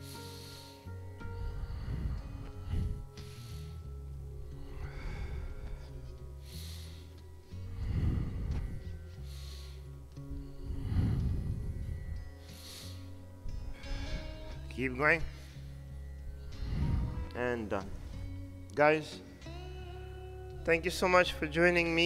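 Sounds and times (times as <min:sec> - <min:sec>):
man breathing heavily: 0:00.0 - 0:20.2
background music with bass line: 0:00.0 - 0:22.0.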